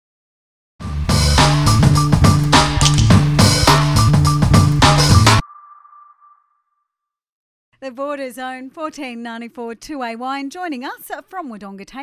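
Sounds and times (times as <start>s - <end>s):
woman speaking: 7.8s - 12.0s.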